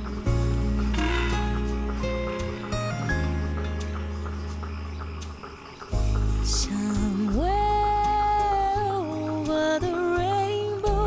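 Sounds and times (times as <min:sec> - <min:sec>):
soft sustained music chord: 0:00.0 - 0:08.0
crickets chirping: 0:00.0 - 0:11.0.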